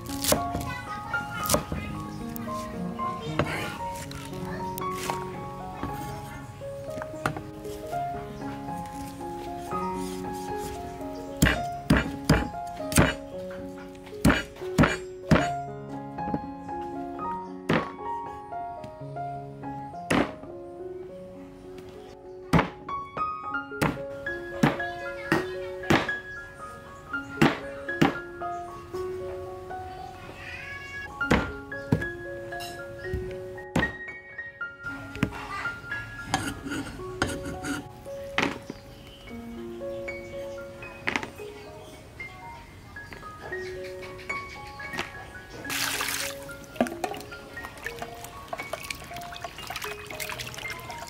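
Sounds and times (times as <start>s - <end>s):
background music: 0.0s - 51.0s
cleaver chopping meat on board: 11.4s - 13.2s, 14.2s - 15.5s.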